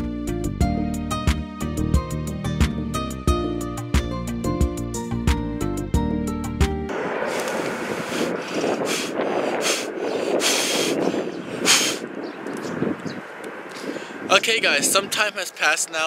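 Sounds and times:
steady rushing background: 6.9s - 16.0s
person blowing into microphone: 7.2s - 12.1s.

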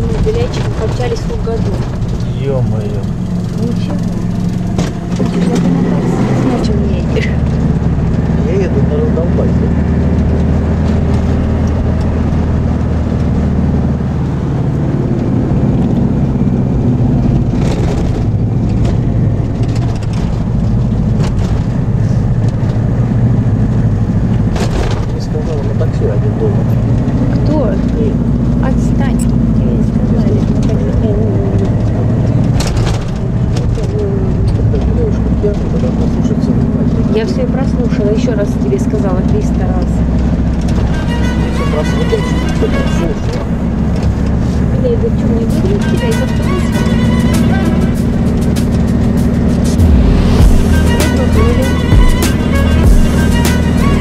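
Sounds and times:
sharp knocks and rattles: 0.0s - 6.4s, 15.1s - 26.0s
vehicle engine drone: 0.0s - 54.0s.

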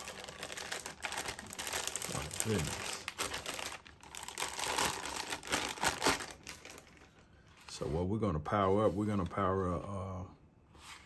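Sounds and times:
plastic bag crinkling: 0.0s - 7.2s.

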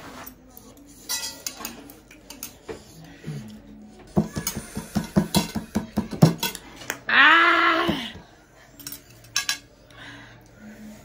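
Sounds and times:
chopsticks clicking on plates: 0.6s - 2.8s.

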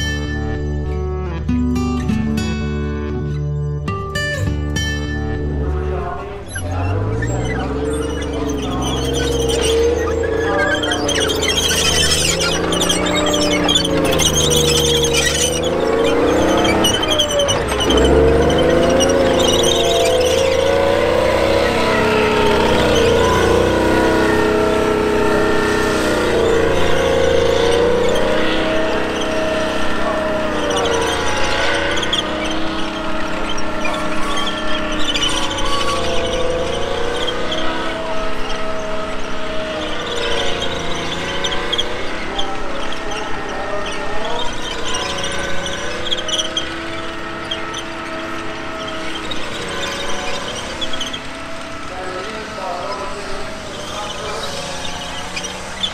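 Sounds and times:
tank engine revving: 0.0s - 3.8s, 4.4s - 55.9s.

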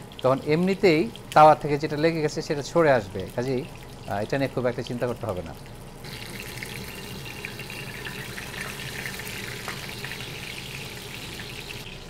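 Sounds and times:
fish sizzling in hot oil: 6.0s - 12.0s.

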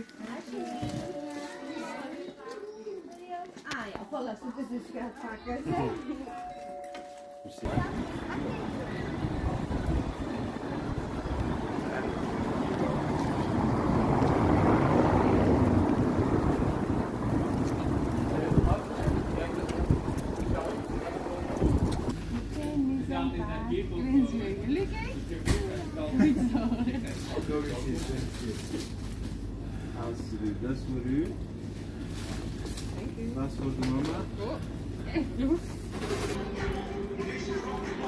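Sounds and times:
voices: 0.0s - 29.0s
street noise: 0.0s - 38.0s
wind buffeting microphone: 7.7s - 22.1s.

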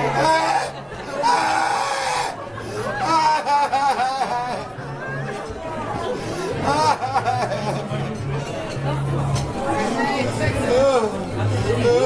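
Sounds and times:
crowd chatter: 0.0s - 12.0s
man wailing in pain: 0.1s - 2.4s.

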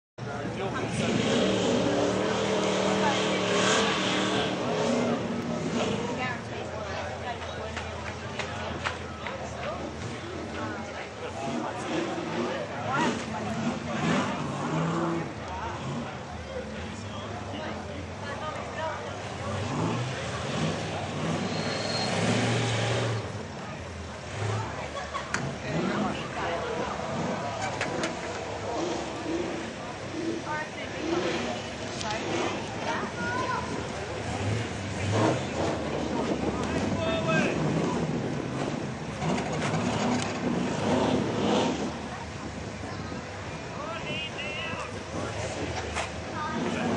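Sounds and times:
voices of onlookers: 0.2s - 46.9s
car engine revving hard: 0.6s - 6.4s, 11.2s - 42.5s.

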